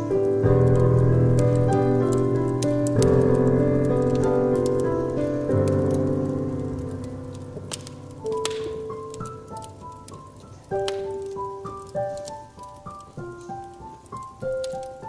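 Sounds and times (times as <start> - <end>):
piano chords ringing: 0.0 - 15.0
wood fire crackling: 0.0 - 15.0.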